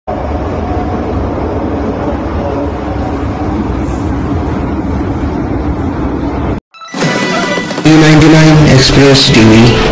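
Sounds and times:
metro train rumble: 0.1 - 6.6.

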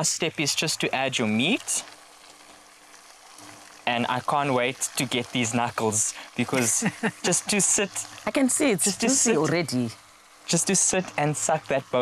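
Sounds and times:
sauce sizzling in a pot: 0.0 - 12.0.

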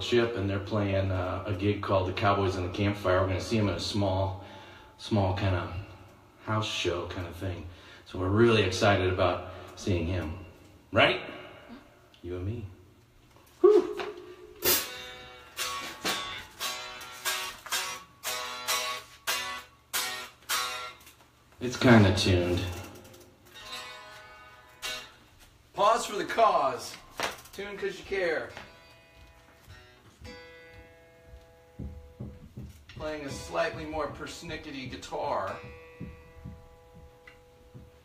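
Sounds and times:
electric guitar strumming: 14.0 - 38.0
low thumps: 29.7 - 38.0.

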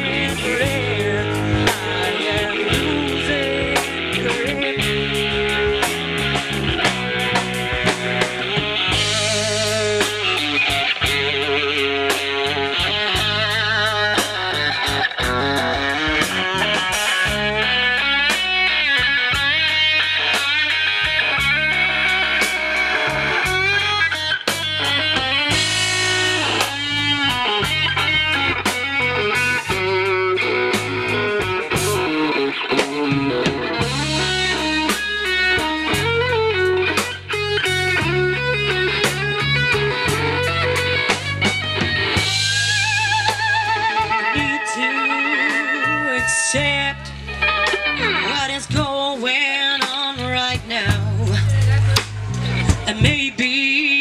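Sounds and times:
drum kit: 0.0 - 54.0
electric guitar: 0.0 - 54.0
live rock band playing: 0.0 - 54.0.

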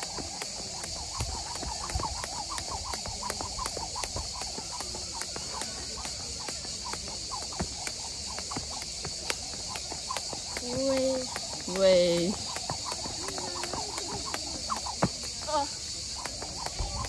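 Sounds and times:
skipping rope slapping dirt: 0.0 - 17.0
steady high hiss: 0.0 - 17.0.

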